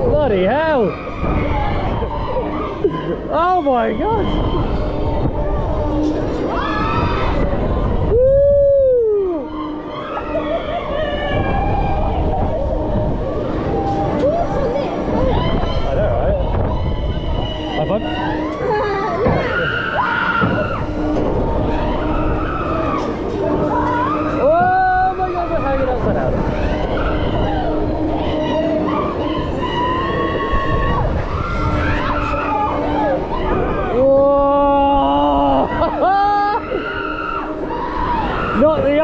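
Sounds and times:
faint wavering cries: 0.0 - 39.0
low steady hum: 0.0 - 39.0
wind rush on microphone: 0.0 - 39.0.

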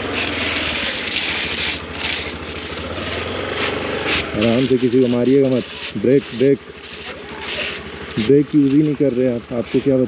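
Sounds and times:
small scooter engine running: 0.0 - 10.0.

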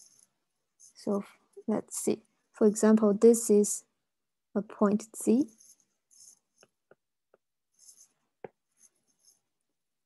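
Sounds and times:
stylus scratching softly: 0.0 - 1.6, 5.2 - 7.0, 7.6 - 9.7.

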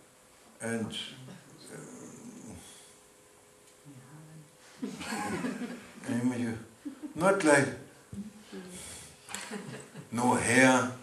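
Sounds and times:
low broken voice sounds: 0.7 - 2.6
man chuckling breathily: 6.9 - 7.2.

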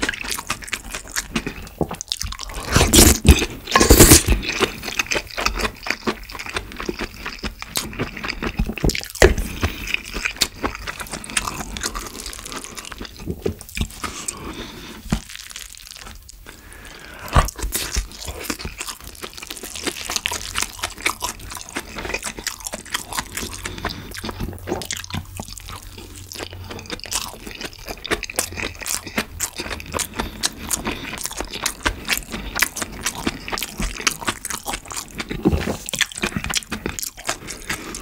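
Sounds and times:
wet crunchy chewing: 0.0 - 38.0.

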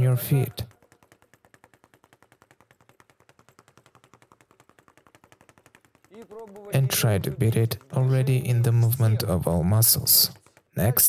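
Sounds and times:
speed bag rattling: 0.0 - 11.0.

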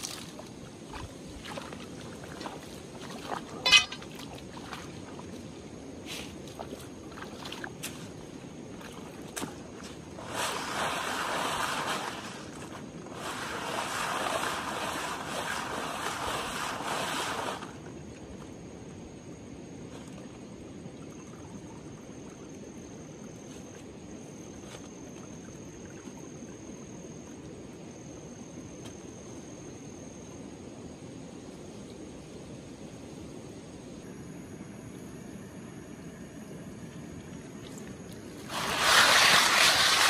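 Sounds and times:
water sloshing and splashing: 0.0 - 18.6
gravel swirled in a pan: 10.2 - 17.6, 38.4 - 40.0.

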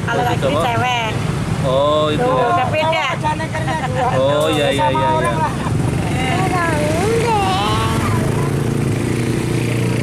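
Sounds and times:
people's voices: 0.0 - 9.0
engine running steadily: 0.0 - 10.0.

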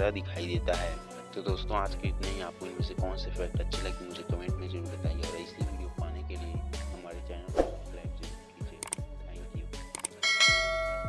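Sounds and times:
music with kick-drum beat: 0.0 - 6.9
notification bell chime: 10.2 - 11.0.

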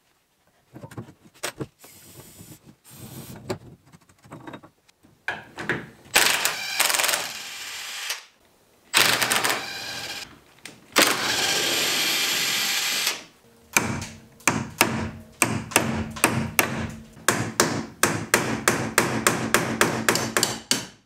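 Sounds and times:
power tool running: 9.0 - 10.2, 11.0 - 13.3
hammer striking metal punch: 13.7 - 21.0.

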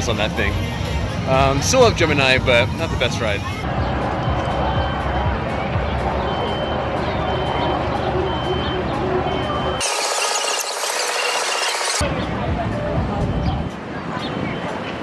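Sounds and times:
music: 0.0 - 9.8, 12.0 - 15.0
crowd voices: 0.0 - 10.6, 11.4 - 15.0.

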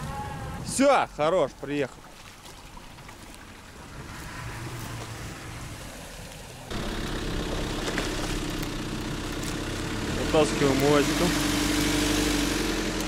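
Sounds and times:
vehicle engine idling: 3.5 - 13.0.

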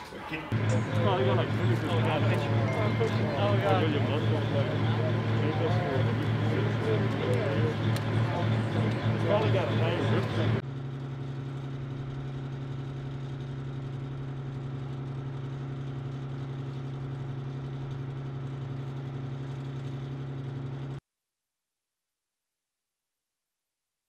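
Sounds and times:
vehicle engine idling: 0.0 - 21.0.

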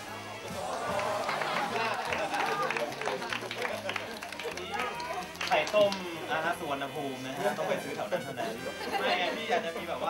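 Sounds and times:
quiet background music: 0.0 - 10.0
young people laughing and talking: 0.5 - 3.9, 7.4 - 10.0
hand claps: 0.6 - 6.2.

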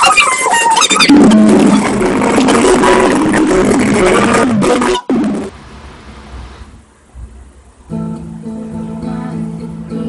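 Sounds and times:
person singing: 8.5 - 10.0.

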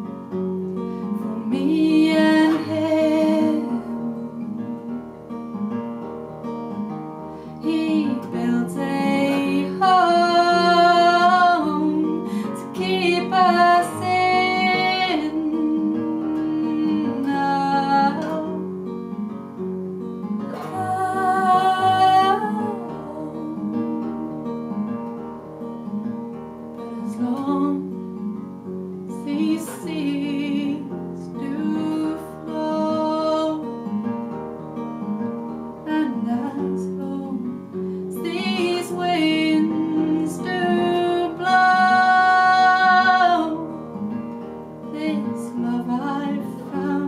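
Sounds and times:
acoustic guitar picking: 0.0 - 47.0
woman singing: 1.0 - 5.0, 7.6 - 18.8, 20.4 - 25.1, 26.8 - 28.4, 29.1 - 34.1, 35.8 - 44.2, 44.8 - 47.0.

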